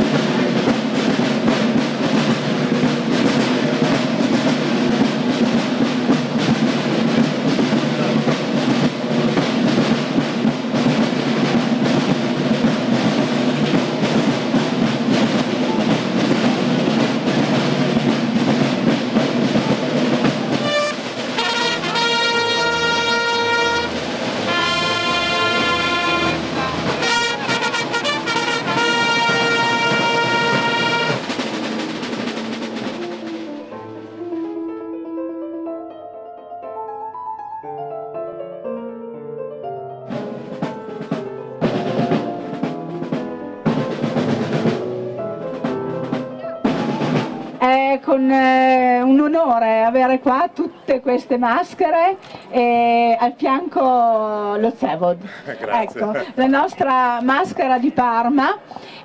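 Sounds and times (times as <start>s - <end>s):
marching drums: 0.0s - 34.2s, 40.1s - 55.1s, 55.8s - 59.0s
trumpet fanfare: 20.5s - 32.1s.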